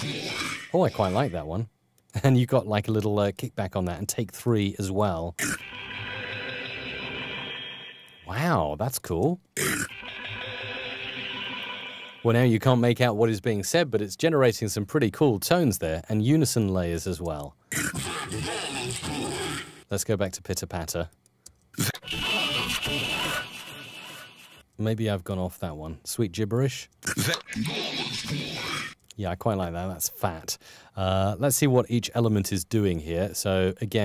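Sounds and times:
synthetic buzzing vocal: 0:00.0 - 0:01.4, 0:05.4 - 0:07.9, 0:09.6 - 0:12.3, 0:17.7 - 0:19.8, 0:27.1 - 0:29.0
synthetic held chord: 0:05.4 - 0:08.3, 0:09.8 - 0:12.3.

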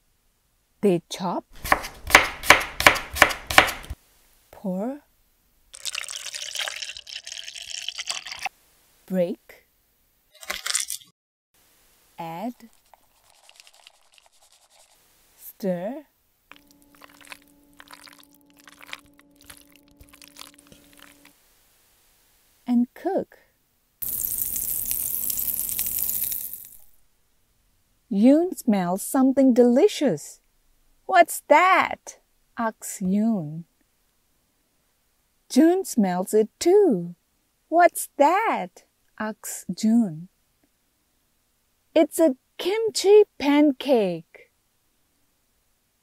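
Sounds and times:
liquid pouring into a bowl: 0:05.8 - 0:08.5, 0:12.7 - 0:15.0, 0:16.5 - 0:21.3, 0:24.0 - 0:26.9
person speaking: 0:12.2 - 0:12.8
batter sizzling in a frying pan: 0:24.0 - 0:26.9.

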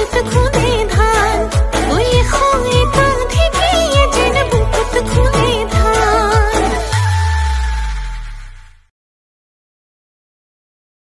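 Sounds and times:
woman singing with vibrato: 0:00.0 - 0:08.1.

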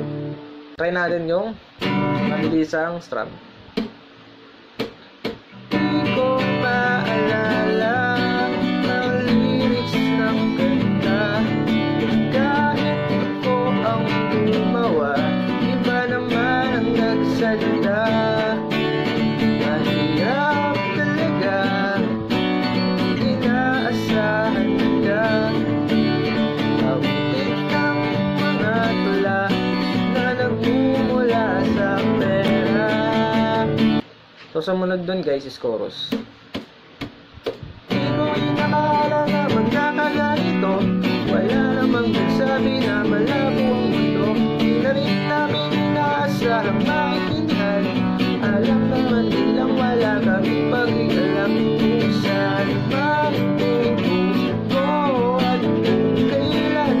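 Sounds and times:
acoustic guitar strumming: 0:00.0 - 0:02.8, 0:03.6 - 0:34.1, 0:36.1 - 0:57.0.

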